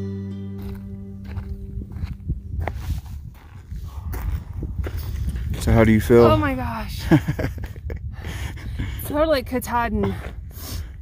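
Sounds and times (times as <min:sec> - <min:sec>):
acoustic guitar music: 0:00.0 - 0:02.7
footsteps crunching on dry ground: 0:00.0 - 0:06.8
wind buffeting microphone: 0:00.6 - 0:11.0.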